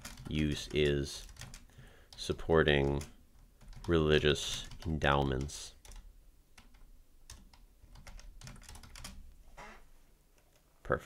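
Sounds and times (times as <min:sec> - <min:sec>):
typing on computer keyboard: 0:00.0 - 0:02.3, 0:02.9 - 0:09.2.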